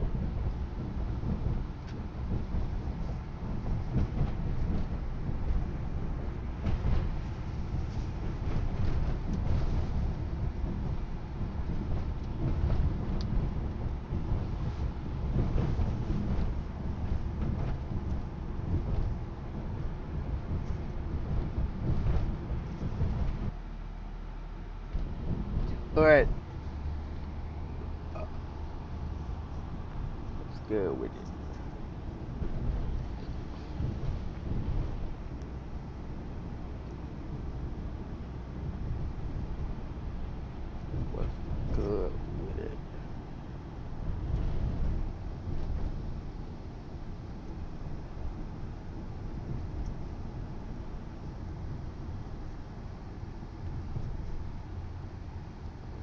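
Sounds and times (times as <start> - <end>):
wind buffeting microphone: 0.0 - 23.6, 24.4 - 56.0
car cabin rumble: 0.0 - 56.0.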